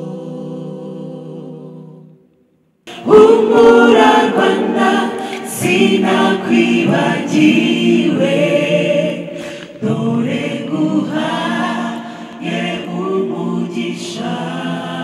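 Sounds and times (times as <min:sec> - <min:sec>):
mixed choir singing a cappella: 0:00.0 - 0:02.2, 0:02.9 - 0:15.0.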